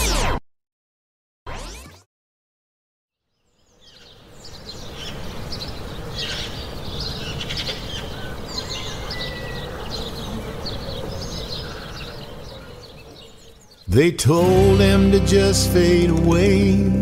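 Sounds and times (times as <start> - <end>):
birds chirping: 3.3 - 16.1.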